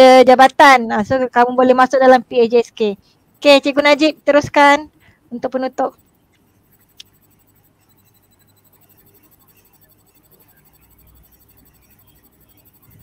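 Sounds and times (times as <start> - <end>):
faint hiss and low hum: 0.0 - 13.0
sharp click: 6.3 - 7.2.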